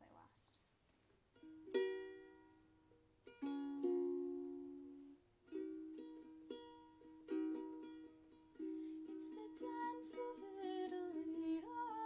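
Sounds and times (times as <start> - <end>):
ukulele strumming: 1.3 - 12.0.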